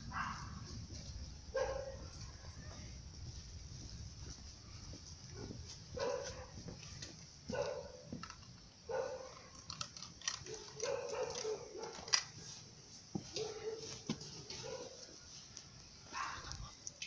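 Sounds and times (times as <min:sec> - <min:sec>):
dog barking faintly: 0:00.0 - 0:03.0, 0:04.2 - 0:06.9, 0:07.5 - 0:08.2, 0:10.5 - 0:12.1, 0:13.2 - 0:15.4, 0:16.0 - 0:17.0
steady low rumble: 0:00.0 - 0:06.0.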